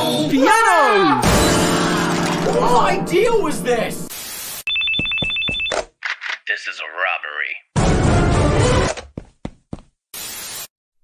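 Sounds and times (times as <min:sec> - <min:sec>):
telephone ringing: 0:04.7 - 0:05.8.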